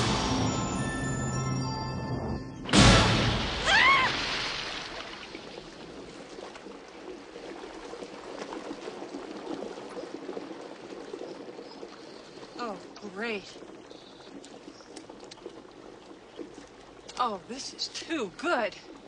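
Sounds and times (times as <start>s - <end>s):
object splashing into pool: 2.7s - 6.7s
water churning and sloshing: 2.7s - 19.0s.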